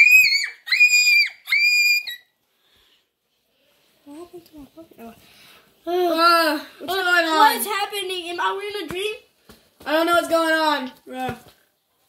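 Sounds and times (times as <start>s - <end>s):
child screaming: 0.0s - 2.3s.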